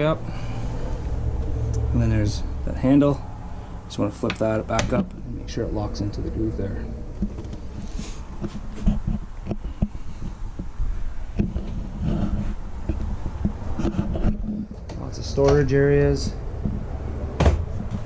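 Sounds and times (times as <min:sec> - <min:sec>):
low rumble: 0:05.0 - 0:08.4
footsteps: 0:06.8 - 0:18.0
thumps and clicks: 0:07.2 - 0:15.6.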